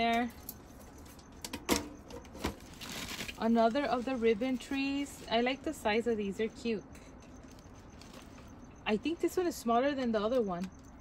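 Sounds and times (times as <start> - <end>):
plastic bags rustling: 2.2 - 5.8.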